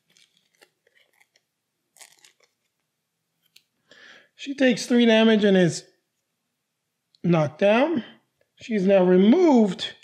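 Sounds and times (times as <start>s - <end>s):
playing cards clicking and rustling: 0.0s - 2.8s.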